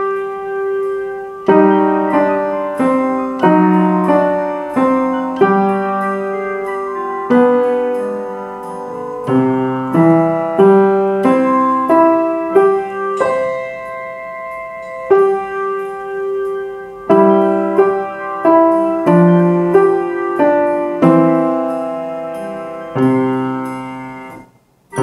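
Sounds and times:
piano melody: 0.0 - 25.0.

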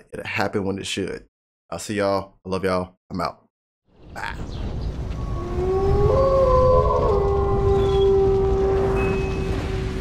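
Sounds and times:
low rumble: 4.7 - 10.0
wolf howl: 5.2 - 10.0.

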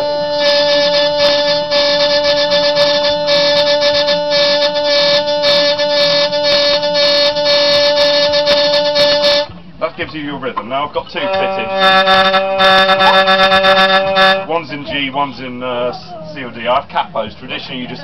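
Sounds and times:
buzzing trompette string: 0.0 - 9.6, 11.1 - 14.6
hurdy-gurdy drone chord: 0.0 - 9.6, 11.1 - 14.7.

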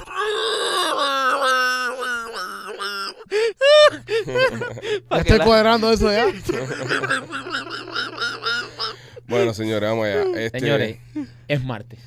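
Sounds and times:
man laughing in high wail: 0.0 - 4.9, 6.2 - 10.5.

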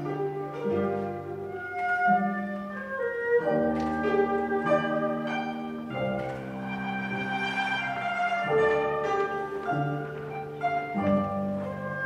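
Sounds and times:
slow lyrical chamber ensemble: 0.0 - 12.0.

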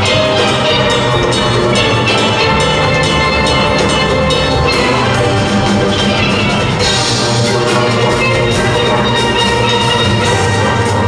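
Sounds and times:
steel band playing: 0.0 - 11.0.

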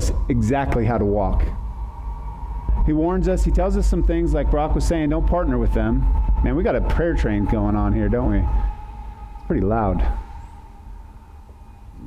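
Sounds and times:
train horn: 5.2 - 12.0.

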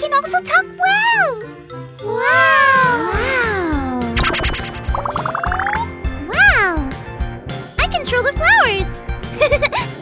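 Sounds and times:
light background music: 0.0 - 10.0
cartoon baby voices: 2.0 - 4.6.

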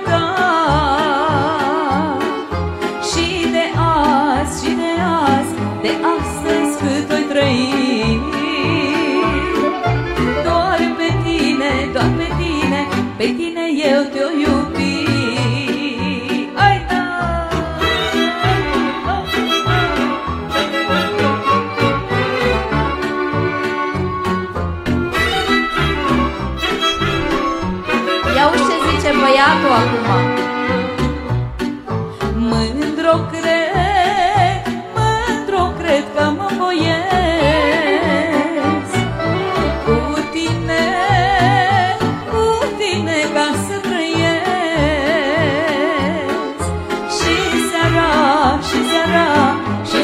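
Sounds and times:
woman singing: 0.0 - 20.2, 28.2 - 30.5, 32.2 - 50.0
accordion folk dance music: 0.0 - 50.0
pulsing bass beat: 24.5 - 30.4.

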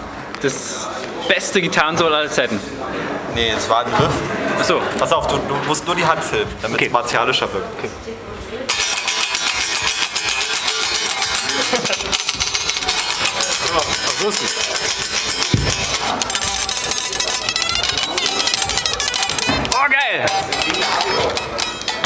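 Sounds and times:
distorted electric guitar riff: 8.7 - 22.0.

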